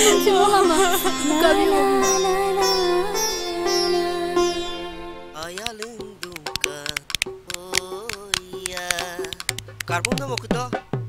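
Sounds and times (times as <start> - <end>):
man singing folk song: 5.3 - 10.8
hand claps: 5.4 - 10.6
barrel drum beating: 5.5 - 11.0.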